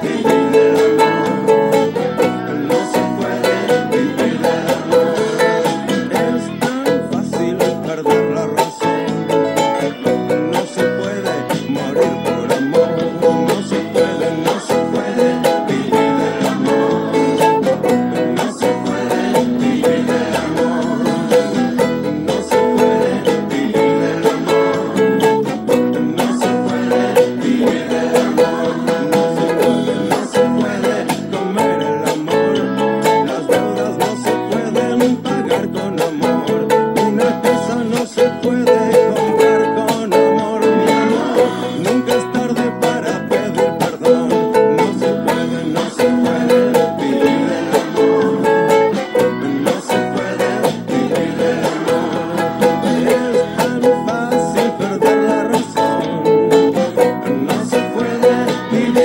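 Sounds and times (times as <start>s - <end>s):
ukulele strumming: 0.0s - 59.0s.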